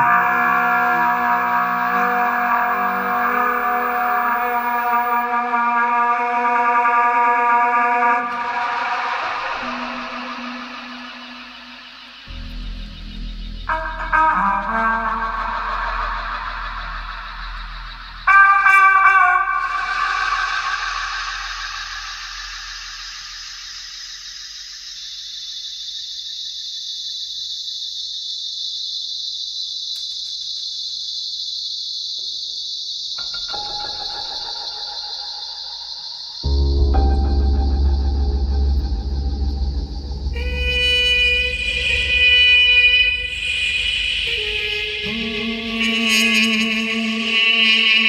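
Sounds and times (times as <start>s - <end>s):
trumpet long high note: 0.0s - 17.0s, 18.2s - 22.8s, 36.4s - 48.0s
thin high steady tone: 0.1s - 5.3s
low electronic rumble: 12.3s - 18.4s, 36.4s - 45.6s.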